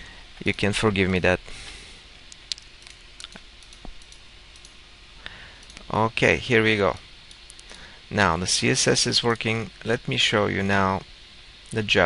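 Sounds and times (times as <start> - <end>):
faint steady hiss: 0.0 - 12.0
keyboard and mouse clicks: 2.3 - 4.8.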